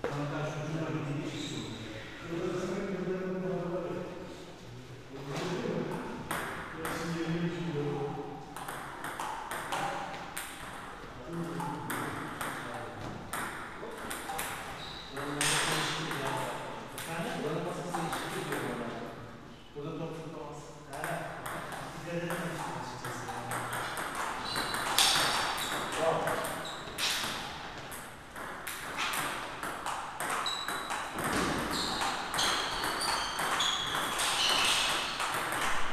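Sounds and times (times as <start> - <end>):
table tennis ball pinging: 5.9 - 7.2, 8.5 - 17.3, 20.9 - 35.9.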